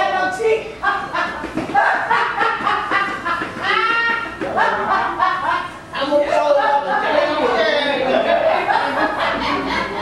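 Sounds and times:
people talking and laughing: 0.0 - 10.0.

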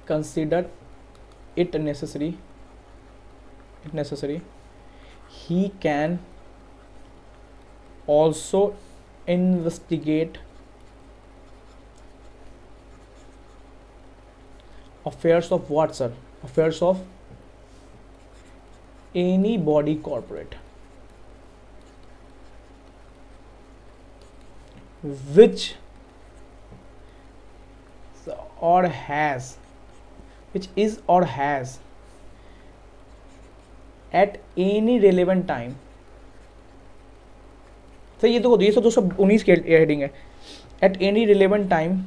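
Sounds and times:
low steady hum: 0.0 - 42.0
stylus scratching on pen tablet: 10.3 - 13.8, 17.7 - 25.2, 29.5 - 30.1, 33.0 - 34.4, 35.6 - 38.2.

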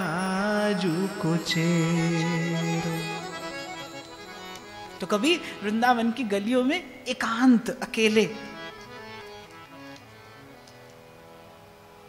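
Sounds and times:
man singing devotional verse: 0.0 - 3.8, 5.0 - 8.5
held harmonium note: 0.0 - 7.0, 7.8 - 12.0.

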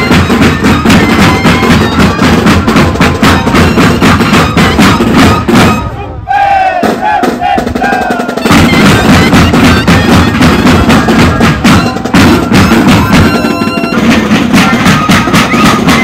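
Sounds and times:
bass and snare drums: 0.0 - 6.0, 6.7 - 16.0
cane flutes playing: 0.0 - 6.8, 7.9 - 16.0.

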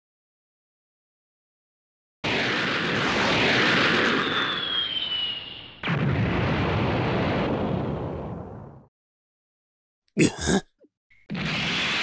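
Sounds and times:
descending high whistle: 4.2 - 5.8.

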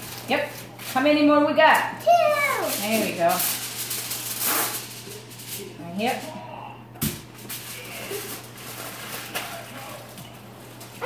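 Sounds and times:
aluminium foil crinkling: 0.0 - 6.4, 7.4 - 11.0
steady low hum: 3.1 - 11.0.

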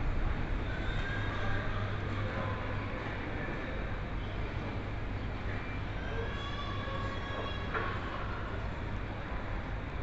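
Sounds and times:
constant low hum: 0.0 - 6.0.

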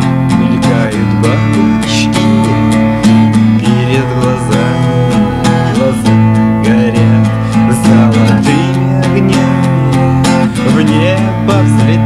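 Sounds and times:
steady beat: 0.0 - 12.0
strummed guitar chords: 0.0 - 12.0.

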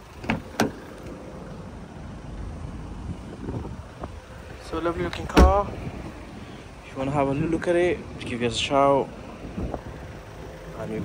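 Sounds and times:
low street rumble: 0.0 - 11.0.

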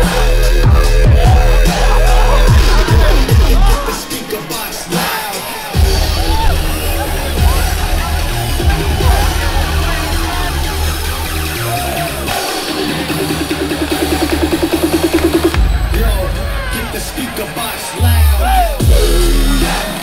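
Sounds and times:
heavy bass: 0.0 - 4.1, 5.8 - 20.0
loud dubstep music: 0.0 - 20.0.

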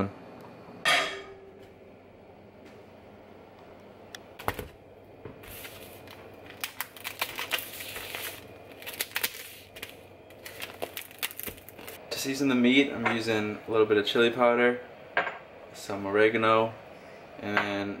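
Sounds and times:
plastic wrap crinkling: 5.4 - 12.0
knife cutting plastic wrap: 6.6 - 12.0.

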